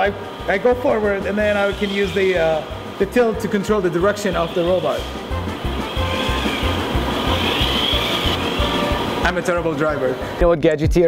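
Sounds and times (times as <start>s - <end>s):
background music with bass beat: 4.0s - 9.4s.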